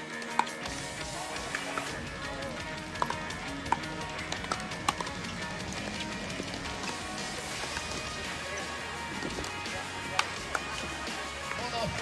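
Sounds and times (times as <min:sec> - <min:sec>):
background music: 0:00.0 - 0:12.0
paddles striking plastic ball: 0:02.9 - 0:06.0.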